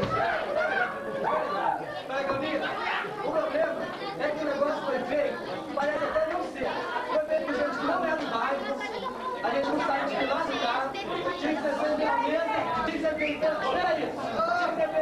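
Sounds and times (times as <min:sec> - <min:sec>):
group of people chattering: 0:00.0 - 0:15.0.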